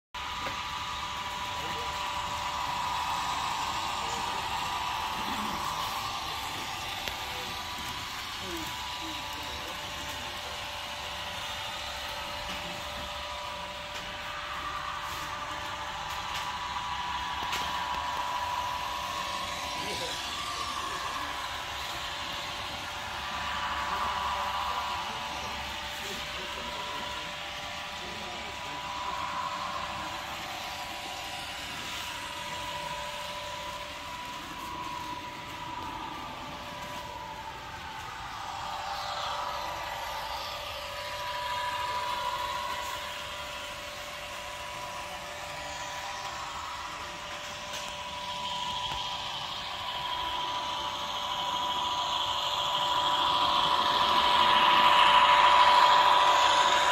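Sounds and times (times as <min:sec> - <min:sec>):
model train engine sound: 0:00.2 - 0:56.9.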